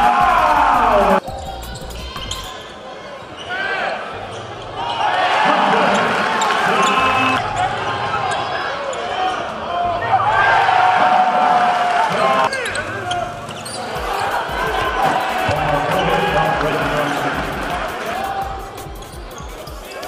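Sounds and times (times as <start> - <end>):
crowd noise: 0.0 - 20.0
sneakers squeaking on hardwood: 12.5 - 17.5.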